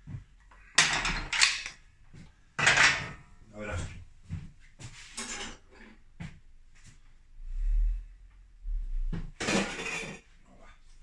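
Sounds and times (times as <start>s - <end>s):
metal tools clanking and scraping: 0.6s - 1.8s, 2.6s - 3.3s, 5.1s - 6.0s, 9.4s - 10.4s.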